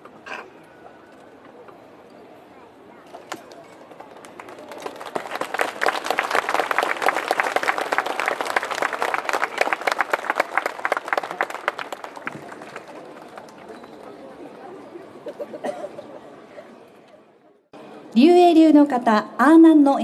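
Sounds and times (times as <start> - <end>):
audience applauding: 3.8 - 14.7.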